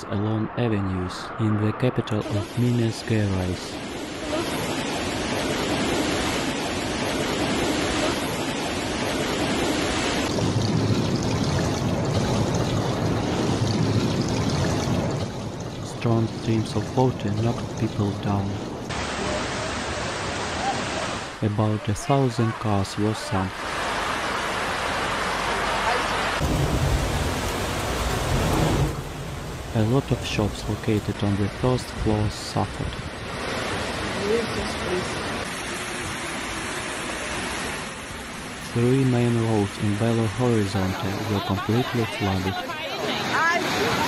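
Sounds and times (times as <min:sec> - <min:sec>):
floodwater rushing: 0:01.6 - 0:44.0
heavy rain: 0:01.6 - 0:44.0.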